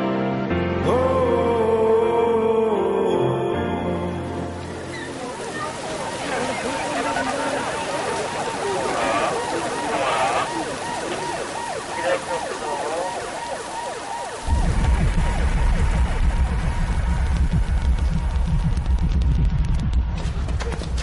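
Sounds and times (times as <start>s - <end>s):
police siren wailing: 4.6s - 18.4s
loud deep rumble: 14.4s - 20.7s.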